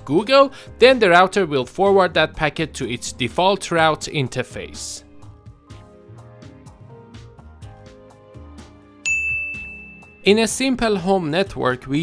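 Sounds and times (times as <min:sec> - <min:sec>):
quiet background music: 0:00.0 - 0:12.0
bright ding chime: 0:09.0 - 0:10.4.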